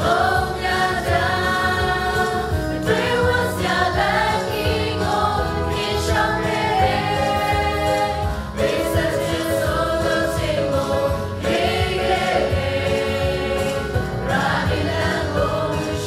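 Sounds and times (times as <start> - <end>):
choir singing a hymn: 0.0 - 16.0
instrumental accompaniment: 0.0 - 16.0.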